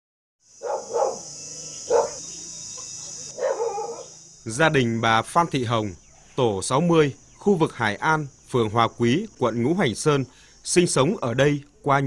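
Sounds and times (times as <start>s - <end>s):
high insect chirr: 0.4s - 12.0s
dog barking: 0.6s - 4.2s.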